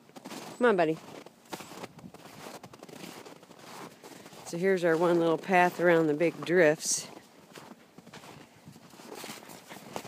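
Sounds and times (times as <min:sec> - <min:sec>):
footsteps crunching through snow: 0:00.0 - 0:10.0.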